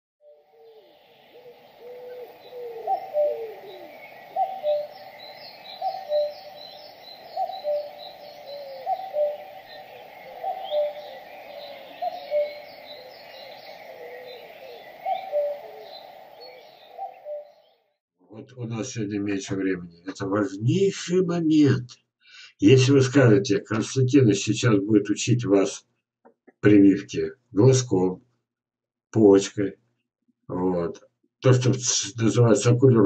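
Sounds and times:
high chirping of small birds: 0:00.4 - 0:17.9.

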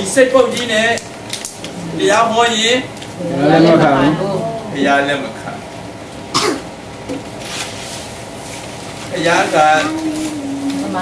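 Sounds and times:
short cough: 0:06.3 - 0:06.7.

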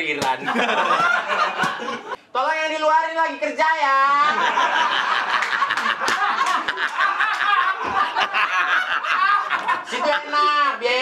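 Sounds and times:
men laughing: 0:00.4 - 0:02.2, 0:04.3 - 0:10.5.

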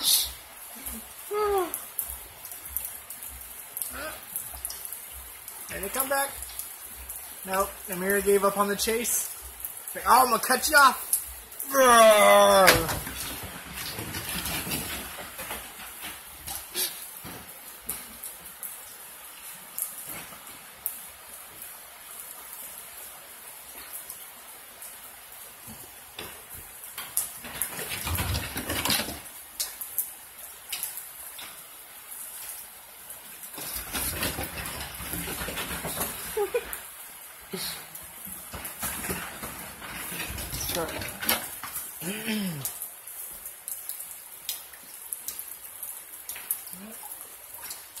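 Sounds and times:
dogs scuffling: 0:12.9 - 0:18.0, 0:33.5 - 0:36.8, 0:38.1 - 0:41.9.

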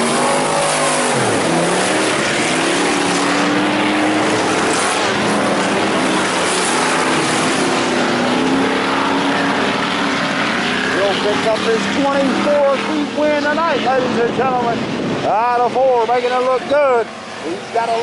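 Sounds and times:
race car engines running hard: 0:00.0 - 0:18.0
race car passing close: 0:00.0 - 0:18.0.

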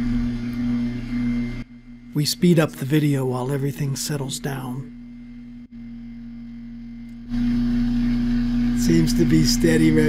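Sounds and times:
electric motor humming: 0:00.0 - 0:02.0, 0:04.2 - 0:10.0.

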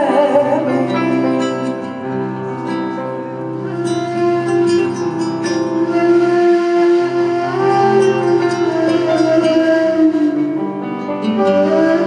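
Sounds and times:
acoustic guitar: 0:00.0 - 0:12.0
keyboard: 0:00.0 - 0:12.0
flute long note: 0:03.4 - 0:12.0.

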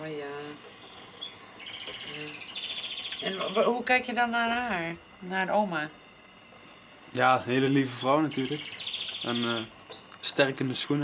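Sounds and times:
high chirping trills: 0:00.0 - 0:05.1, 0:07.5 - 0:10.6.

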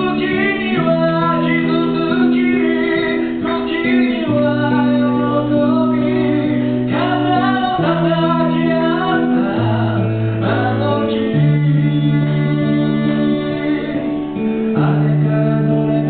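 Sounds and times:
guitar: 0:00.0 - 0:16.0
man singing a slow ballad: 0:00.0 - 0:16.0.

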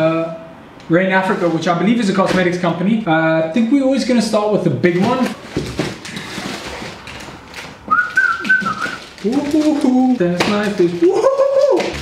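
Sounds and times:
plastic bag crinkling: 0:05.8 - 0:12.0
whistled note: 0:07.9 - 0:09.0.

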